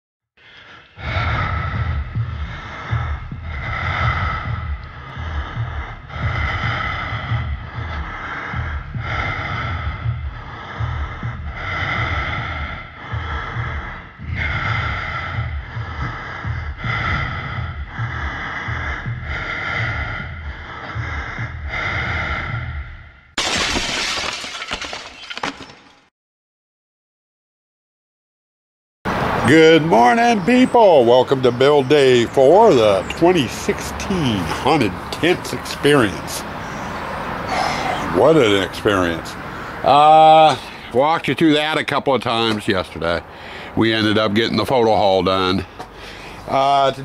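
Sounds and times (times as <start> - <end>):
heavy breathing sound effect: 0.4 - 23.4, 31.9 - 41.0, 43.2 - 43.8, 44.8 - 46.9
deep pulsing rumble: 0.9 - 23.4.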